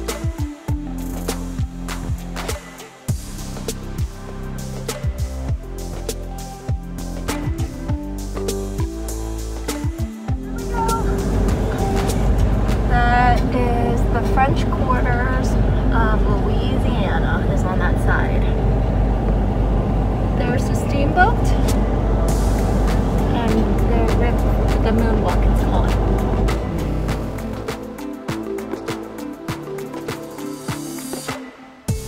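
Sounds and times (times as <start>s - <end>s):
music with singing: 0.0s - 16.8s, 21.5s - 32.0s
ferry engine rumble: 10.4s - 29.2s.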